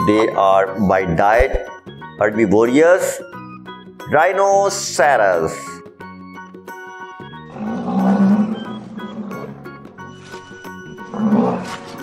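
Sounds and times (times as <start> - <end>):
background music: 0.0 - 12.0
rhinoceros call: 7.4 - 12.0.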